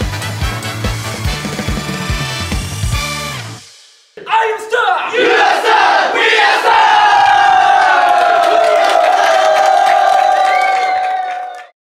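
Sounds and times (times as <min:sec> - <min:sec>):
men shouting a cheer: 0:04.4 - 0:11.7.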